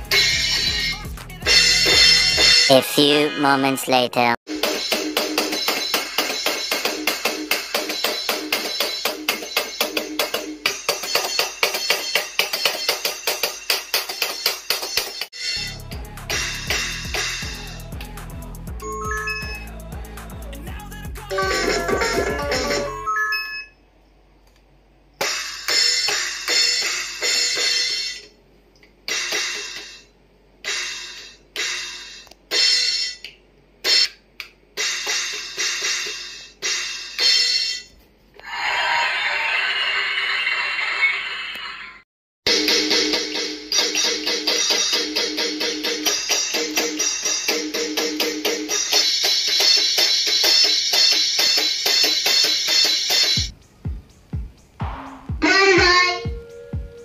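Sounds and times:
music with bass beat: 0.0s - 2.7s, 15.6s - 23.0s, 52.1s - 57.0s
fast sharp percussion beat: 15.7s - 18.8s, 44.1s - 57.0s
electronic cymbal hits: 52.5s - 57.0s.

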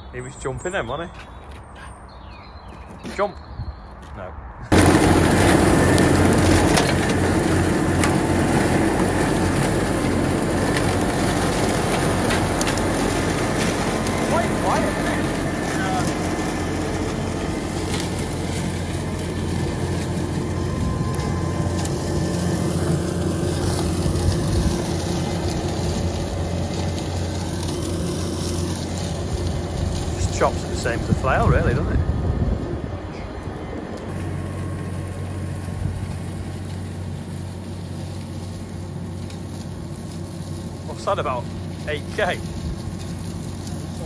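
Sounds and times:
chopper shredding stalks: 4.1s - 44.0s
tractor engine drone: 4.7s - 44.0s.

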